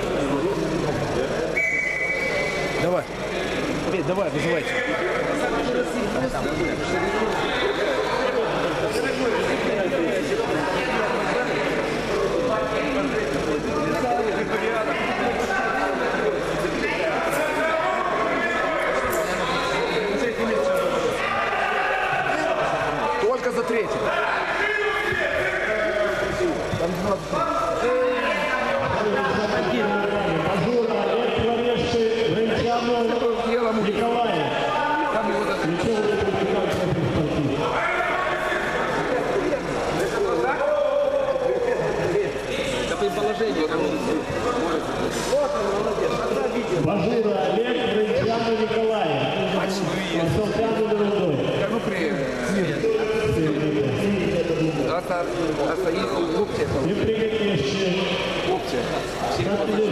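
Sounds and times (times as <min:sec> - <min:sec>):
referee's whistle: 0:01.5 - 0:02.8
men shouting: 0:37.6 - 0:39.2.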